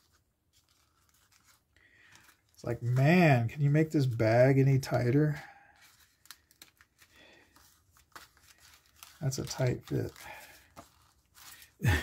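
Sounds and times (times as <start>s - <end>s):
plastic bag crinkling: 0.0s - 4.2s, 4.8s - 12.0s.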